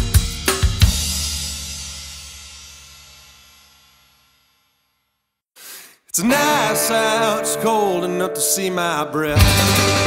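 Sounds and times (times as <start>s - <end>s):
rock band held chord: 6.2s - 10.0s.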